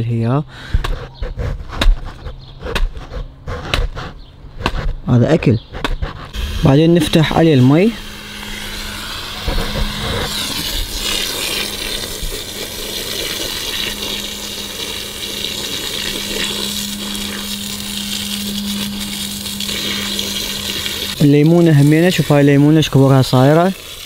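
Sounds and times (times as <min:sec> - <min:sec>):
steady low hum: 0:00.3 - 0:24.0
hose water splashing on soil: 0:10.4 - 0:24.0.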